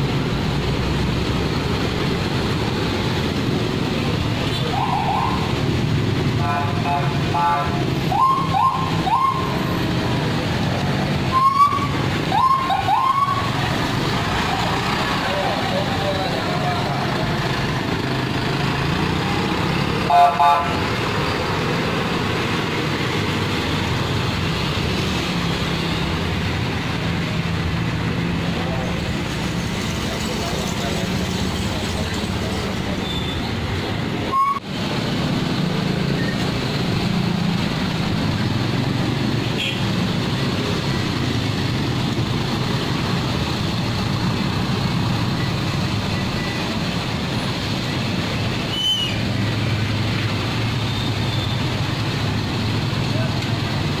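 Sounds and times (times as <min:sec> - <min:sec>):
vehicle engines and traffic drone: 0:00.0 - 0:54.0.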